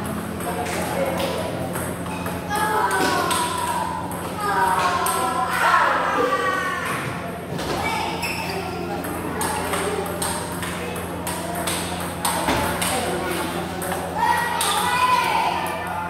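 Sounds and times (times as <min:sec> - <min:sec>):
voices in a hall: 0:00.0 - 0:16.0
table tennis ball pinging: 0:00.3 - 0:05.6, 0:08.3 - 0:15.0.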